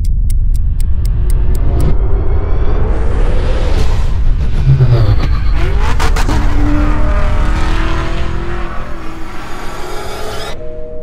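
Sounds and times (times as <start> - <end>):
sports car engine revving: 5.6 - 10.5.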